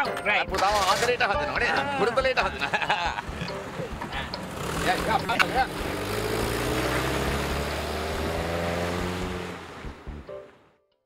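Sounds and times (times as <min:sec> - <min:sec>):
jeep engine accelerating: 0:02.7 - 0:10.5.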